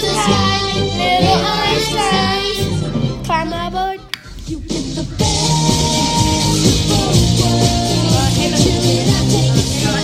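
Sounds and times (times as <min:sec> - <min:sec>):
children singing: 0:00.0 - 0:02.8
upbeat backing music: 0:00.0 - 0:10.0.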